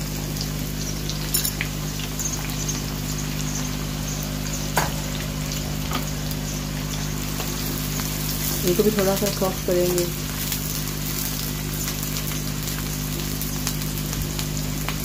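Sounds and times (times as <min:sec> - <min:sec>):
onions sizzling in oil: 0:00.0 - 0:15.0.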